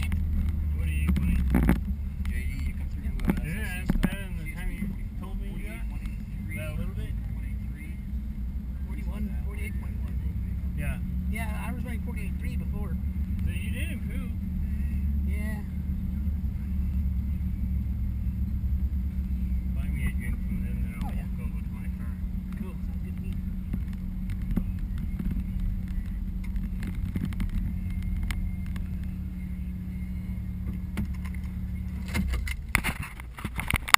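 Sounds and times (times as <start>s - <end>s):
car engine droning: 0.0s - 33.9s.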